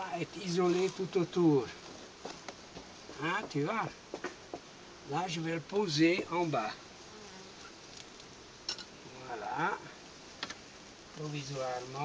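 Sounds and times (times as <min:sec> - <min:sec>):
honeybees buzzing: 0:00.0 - 0:12.0.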